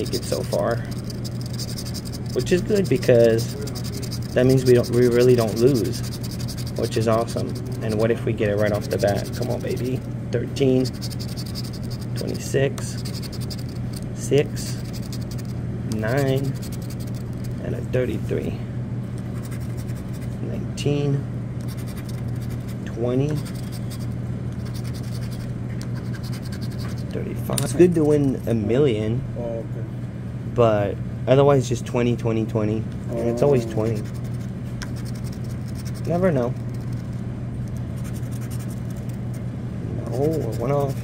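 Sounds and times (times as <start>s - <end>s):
scratch-off ticket scraping: 0.0s - 10.1s, 10.7s - 14.0s, 14.6s - 15.5s, 16.1s - 17.6s, 23.4s - 27.1s, 33.5s - 37.2s, 37.9s - 39.4s, 40.1s - 41.0s
steady low hum: 0.0s - 41.0s.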